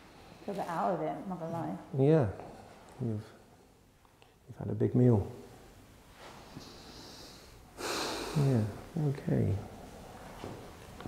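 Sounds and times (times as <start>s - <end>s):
person breathing: 6.5s - 8.8s.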